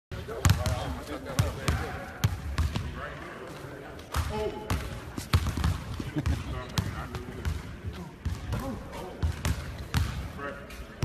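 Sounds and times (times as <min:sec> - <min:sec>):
basketballs bouncing on wooden floor: 0:00.4 - 0:02.9, 0:04.2 - 0:10.3.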